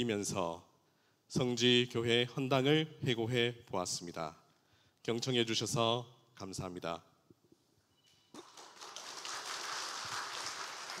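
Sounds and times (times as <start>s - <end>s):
congregation applauding: 8.3s - 11.0s.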